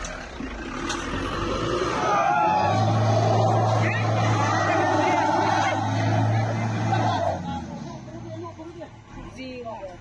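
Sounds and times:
car engine under load: 0.0 - 10.0
people's voices: 1.8 - 10.0.

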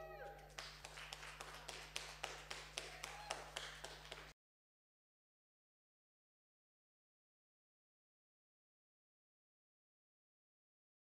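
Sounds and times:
people clapping: 0.0 - 4.4.

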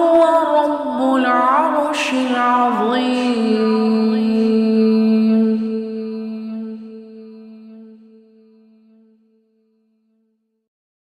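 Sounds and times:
person chanting long note: 0.0 - 8.8.

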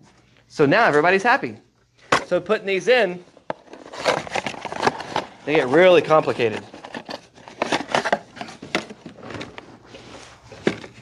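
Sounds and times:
packaging rustling: 3.2 - 11.0.

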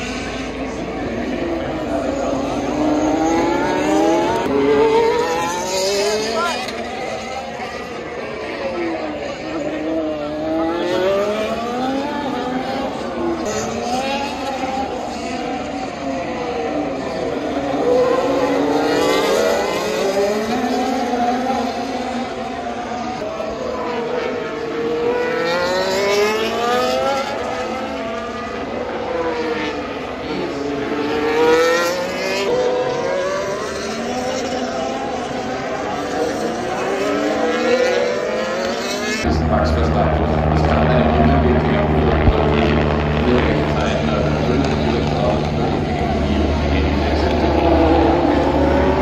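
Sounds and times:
racing car engines: 0.0 - 49.0.

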